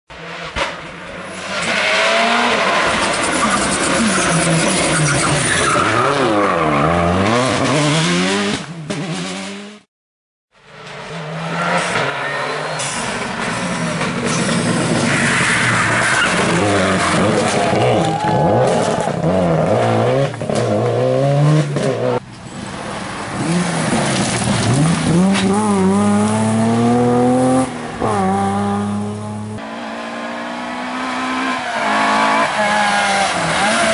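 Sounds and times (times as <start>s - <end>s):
rally car engine revving: 0.1s - 9.9s, 10.6s - 22.2s, 23.3s - 33.9s.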